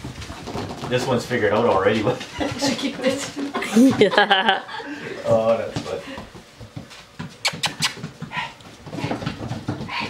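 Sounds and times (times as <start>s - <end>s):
paws scrabbling on tile floor: 0.0s - 4.5s, 5.2s - 10.0s
puppy sounds: 7.2s - 10.0s.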